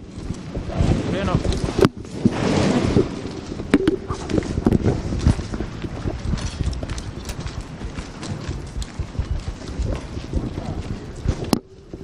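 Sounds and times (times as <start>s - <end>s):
hurried footsteps on pavement: 3.0s - 12.0s
handheld camera knocking and rustling: 3.3s - 12.0s.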